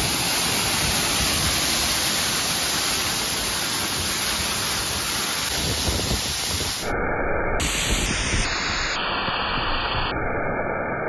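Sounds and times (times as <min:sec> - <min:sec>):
waterfall splashing on rock: 0:00.0 - 0:06.8.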